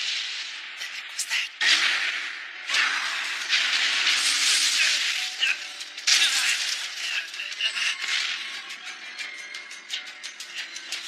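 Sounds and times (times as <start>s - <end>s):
sharp cracks and swishes: 0.0s - 8.8s
background music: 0.0s - 11.0s.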